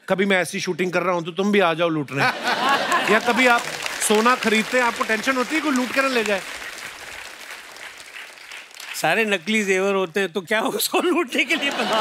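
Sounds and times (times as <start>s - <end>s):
audience applauding: 2.4s - 9.8s, 11.5s - 12.0s.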